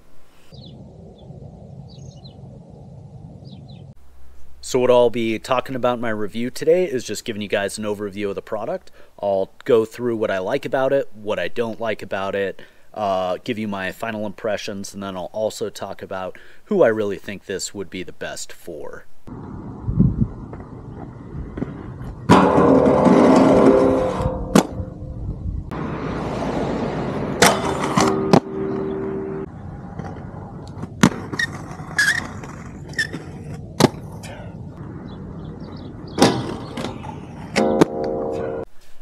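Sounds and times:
inline skates rolling: 20.2 - 24.4, 29.5 - 34.4, 35.4 - 37.9
skates scraping grinds: 26.2 - 28.9, 29.9 - 34.5
sharp clacks of landings: 30.0 - 34.4, 36.1 - 38.5.

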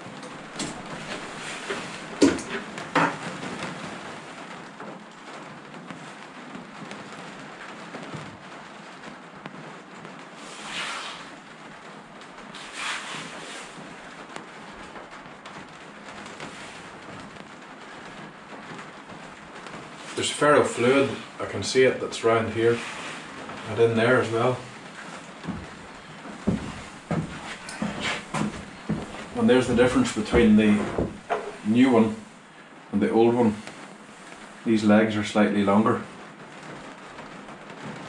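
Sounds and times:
soft rustling: 0.0 - 38.0
steady hiss: 0.0 - 38.0.

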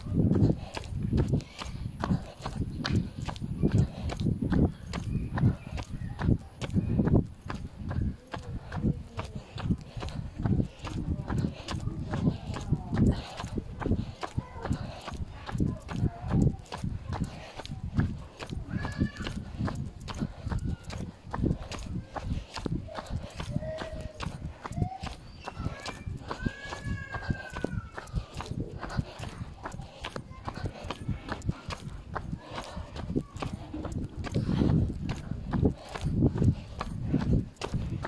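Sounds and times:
background voices: 0.0 - 38.0.

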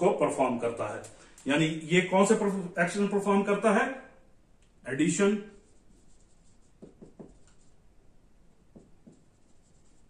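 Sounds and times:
pen scratching: 5.6 - 7.8, 8.8 - 10.0.

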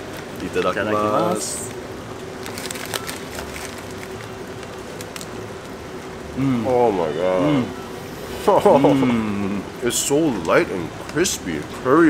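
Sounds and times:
faint steady hum: 0.0 - 12.0
crispy bread crunching: 2.3 - 5.8.

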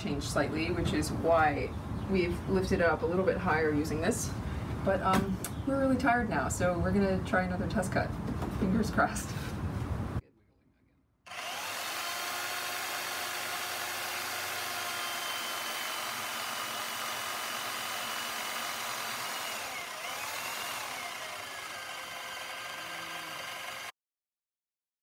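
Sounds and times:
bandsaw cutting metal: 11.3 - 23.9.

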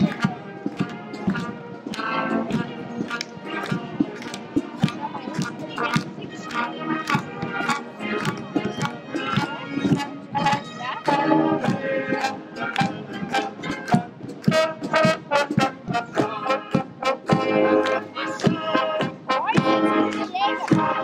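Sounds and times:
marching brass band playing: 0.0 - 21.0.

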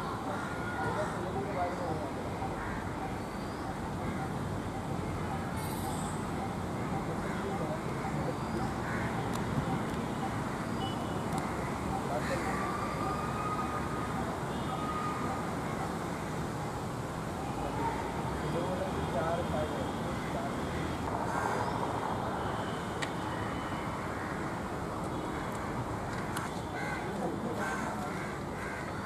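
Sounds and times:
crows cawing: 8.8 - 9.2, 11.4 - 12.9, 20.1 - 21.8, 24.1 - 24.5, 25.4 - 29.0.

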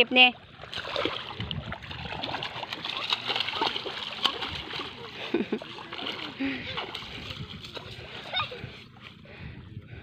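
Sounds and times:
feet splashing in shallow water: 0.1 - 9.6
high child voice: 8.3 - 8.7.

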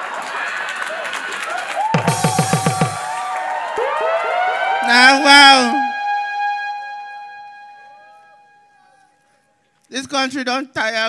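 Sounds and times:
ringing electronic tone with echoes: 2.0 - 9.5.

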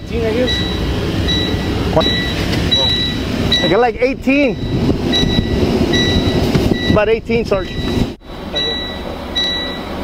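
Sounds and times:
truck engine rumble and clatter: 0.0 - 10.0
high electronic beeps: 0.4 - 9.9.

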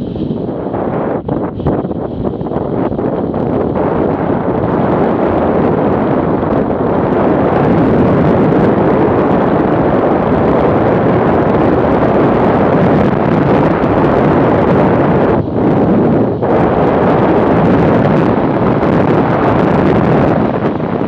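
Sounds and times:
wind rushing over microphone: 0.0 - 21.0.

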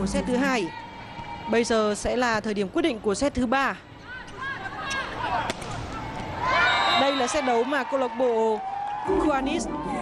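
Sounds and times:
crowd and court noise: 0.0 - 10.0.

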